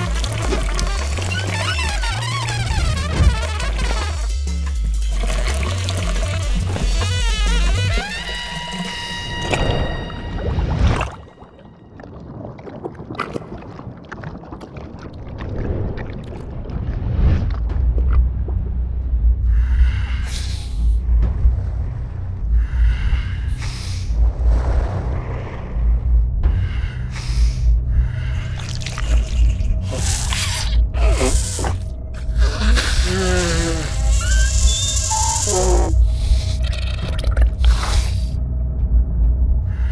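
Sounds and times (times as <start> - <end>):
water gurgling and pouring: 0.0 - 3.4, 5.0 - 8.4, 9.2 - 18.2, 28.4 - 38.3
film score bass line: 0.0 - 11.3, 16.7 - 39.9
low thudding pulse: 16.7 - 28.6, 35.8 - 39.9.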